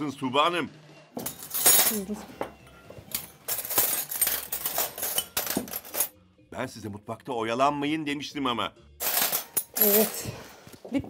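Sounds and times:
plates glasses and cutlery clinking: 1.2 - 6.2, 9.0 - 10.5.

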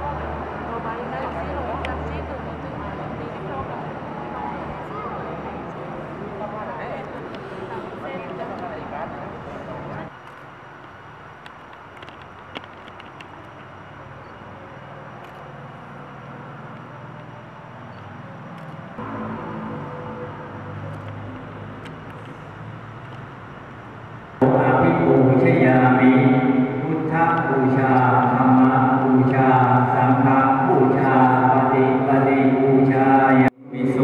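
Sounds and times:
people gathered in a hall: 0.0 - 10.2, 14.2 - 23.2, 24.0 - 34.0.

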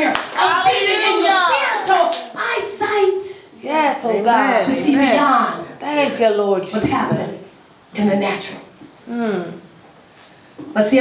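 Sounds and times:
hand clapping: 0.0 - 0.4.

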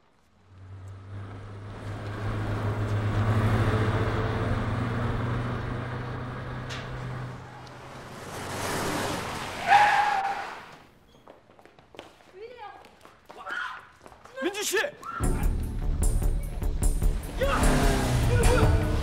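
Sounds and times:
car engine passing: 0.4 - 10.8, 16.7 - 19.0.

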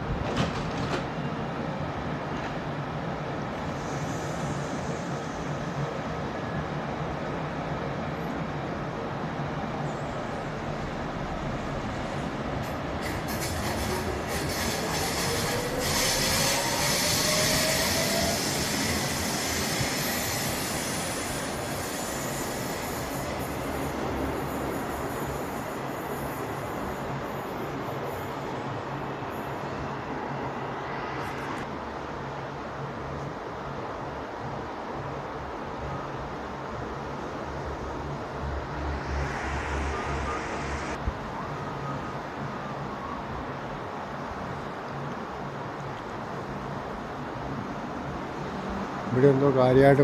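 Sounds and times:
train rumbling on rails: 0.0 - 50.0
rising electric whine: 38.4 - 41.0.

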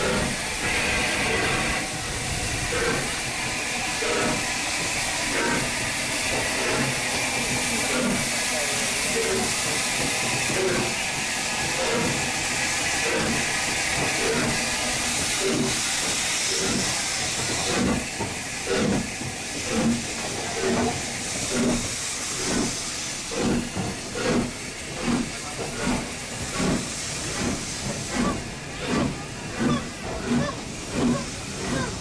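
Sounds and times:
steam hissing: 0.0 - 32.0
steam locomotive exhaust chuffs: 0.0 - 32.0.

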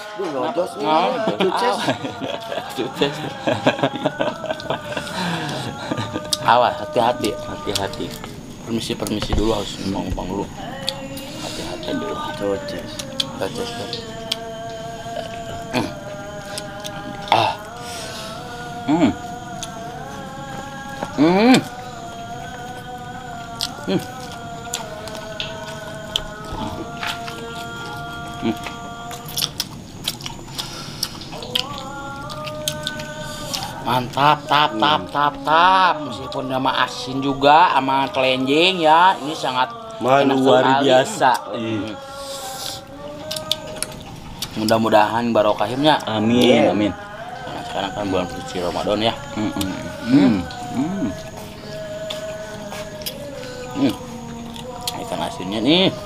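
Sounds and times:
men murmuring: 0.0 - 29.1, 30.6 - 56.0
steady held background tones: 0.0 - 56.0
people chewing and lip smacking: 1.6 - 56.0.

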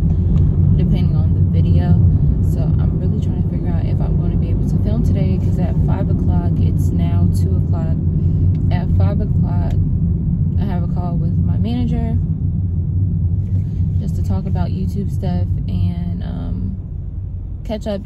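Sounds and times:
car engine and tyres rumbling: 0.0 - 18.0
woman talking: 0.8 - 8.0, 8.6 - 9.8, 10.6 - 12.2, 14.0 - 16.8, 17.7 - 18.0.

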